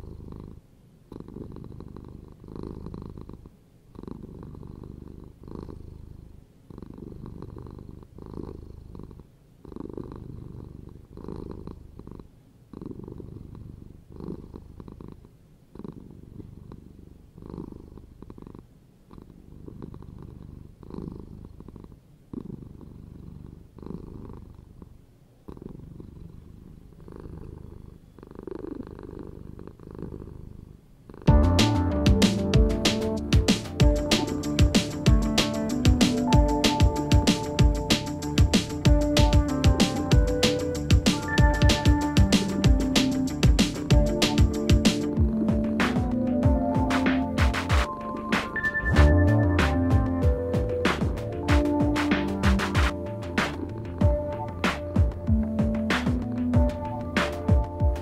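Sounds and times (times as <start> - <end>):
cat purring: 0.0 - 58.0.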